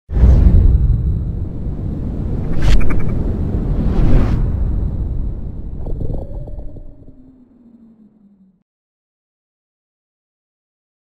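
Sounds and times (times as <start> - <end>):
deep rumble: 0.1 - 8.6
whoosh: 0.1 - 8.6.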